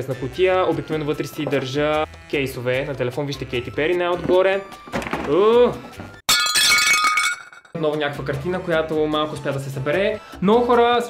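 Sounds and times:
glassy clink with ringing: 0:06.3 - 0:07.8.

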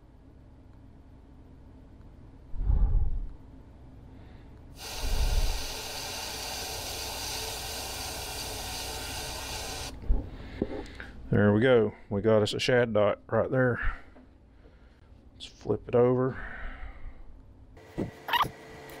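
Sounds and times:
airbrush spraying hiss: 0:04.8 - 0:10.0.

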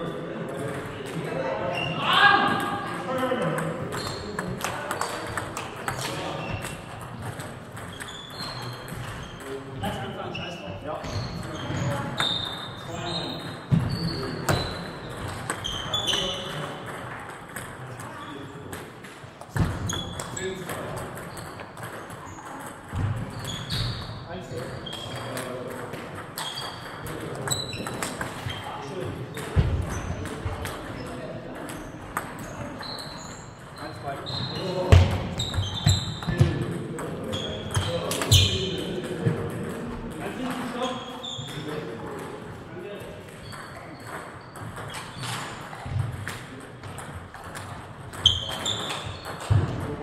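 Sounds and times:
table tennis ball hits: 0:13.7 - 0:18.1.

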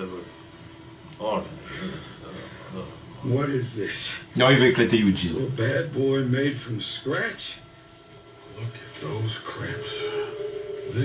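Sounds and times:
man speaking in a low voice: 0:02.7 - 0:07.6, 0:08.5 - 0:11.0.

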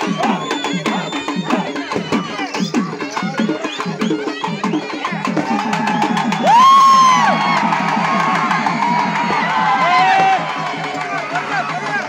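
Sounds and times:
crowd: 0:00.0 - 0:12.0
fast festival drumming: 0:00.0 - 0:12.0
rising whoop: 0:05.5 - 0:11.0.

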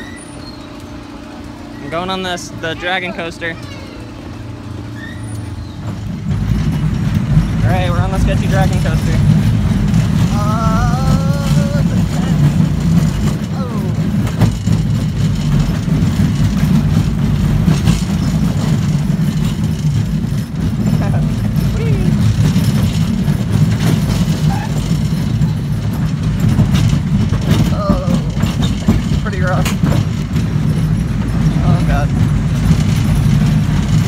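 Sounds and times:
rattles: 0:00.0 - 0:34.0
roller coaster rumbling on track: 0:00.0 - 0:34.0.

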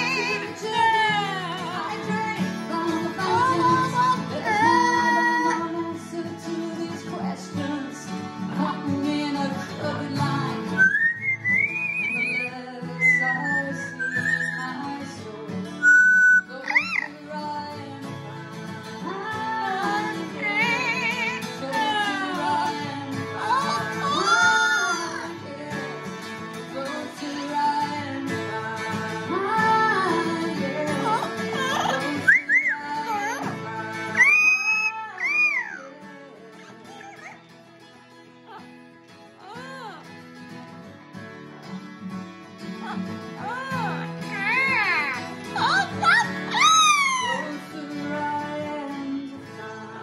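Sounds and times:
strummed acoustic guitars: 0:00.0 - 0:50.0
parrot whistling: 0:10.8 - 0:14.9, 0:15.8 - 0:17.1, 0:31.6 - 0:33.4, 0:34.1 - 0:35.9.

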